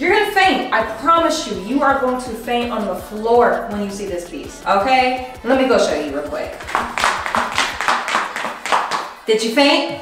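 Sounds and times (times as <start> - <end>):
rapid even clapping: 6.6 - 9.2.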